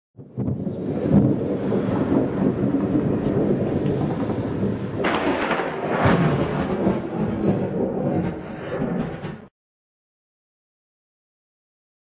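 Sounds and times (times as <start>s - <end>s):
sharp thunder crack: 0.2s - 9.5s
thunder rumbling: 0.2s - 9.5s.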